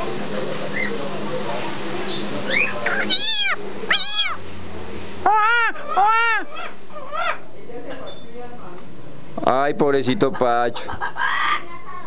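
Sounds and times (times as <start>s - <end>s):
parrot mimicking a cat meow: 2.5s - 4.4s.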